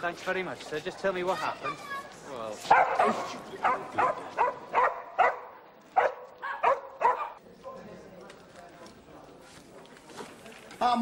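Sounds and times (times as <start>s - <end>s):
dog barking: 2.7s - 7.4s.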